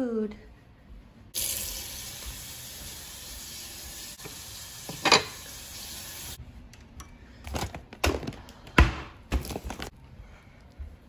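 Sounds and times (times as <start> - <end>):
water running from a tap: 1.4 - 6.4.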